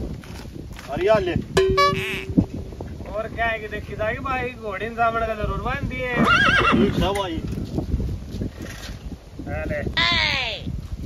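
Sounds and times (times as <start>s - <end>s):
short held tone: 1.6s - 2.6s
horse whinnying: 6.2s - 7.0s.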